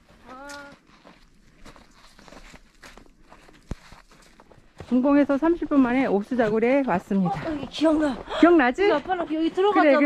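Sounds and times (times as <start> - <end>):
footsteps in slushy snow: 0.0 - 9.6.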